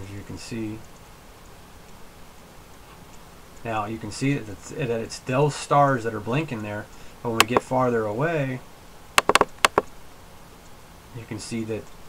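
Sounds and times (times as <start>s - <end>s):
faint room hiss: 0.0s - 12.0s
computer mouse clicks: 7.4s - 7.6s, 9.2s - 9.9s.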